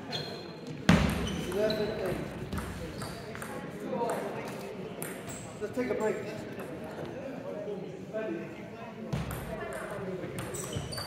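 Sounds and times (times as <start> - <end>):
voices in sports hall: 0.0 - 11.0.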